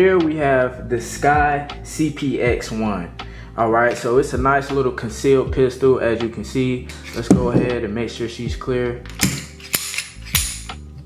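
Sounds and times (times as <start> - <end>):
pistol slide metallic clacks: 9.0 - 10.8.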